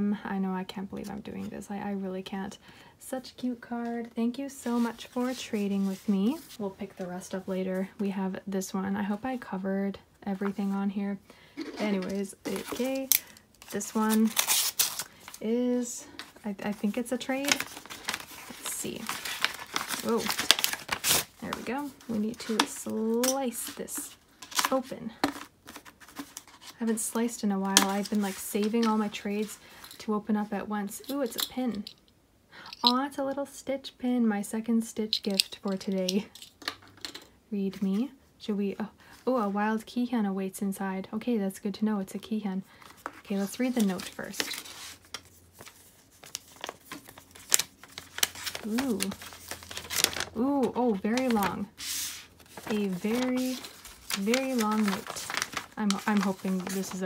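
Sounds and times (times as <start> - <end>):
paper mailer crinkling: 11.8 - 26.8, 42.8 - 57.0
card pulled from wrapping: 42.8 - 57.0.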